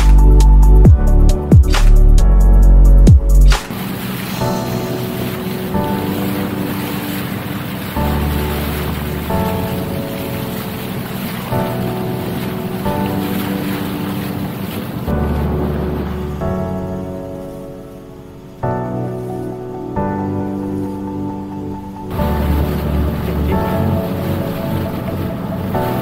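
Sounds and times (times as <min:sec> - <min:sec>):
background music: 0:00.0 - 0:26.0
wind and water rushing: 0:00.0 - 0:26.0
wind buffeting microphone: 0:00.0 - 0:26.0.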